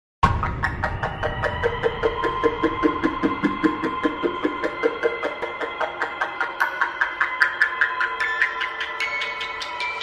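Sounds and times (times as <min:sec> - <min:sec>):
fast ticking synth pulse: 0:00.2 - 0:10.0.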